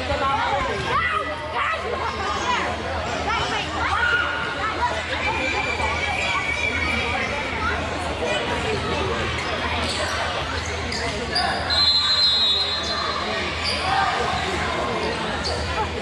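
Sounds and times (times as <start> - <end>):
people calling and chattering: 0.0 - 16.0
whistle blowing: 11.7 - 13.0.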